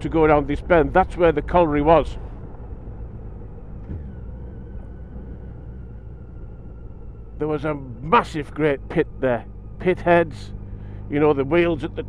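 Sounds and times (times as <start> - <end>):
faint steady whine: 0.0 - 12.0
motorcycle engine and road rumble: 0.0 - 12.0.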